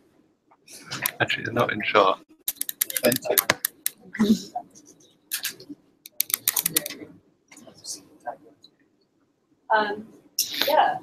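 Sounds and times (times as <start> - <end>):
faint low voices: 0.8 - 2.2
sharp clicks and taps: 2.5 - 4.0, 5.3 - 7.0.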